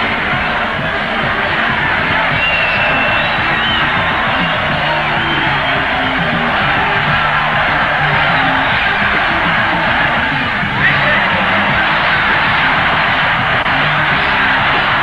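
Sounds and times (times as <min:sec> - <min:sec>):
crowd shouting and cheering: 0:00.0 - 0:15.0
rock band playing: 0:00.0 - 0:15.0.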